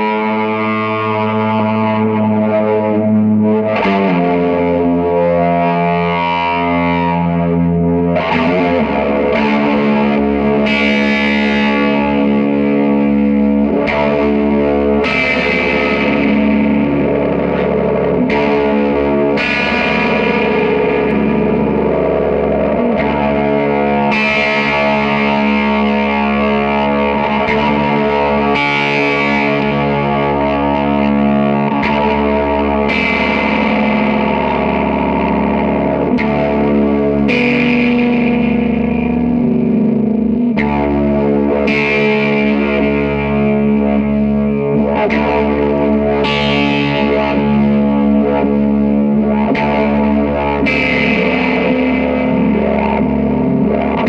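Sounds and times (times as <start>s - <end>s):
distorted guitar drone: 0.0s - 54.0s.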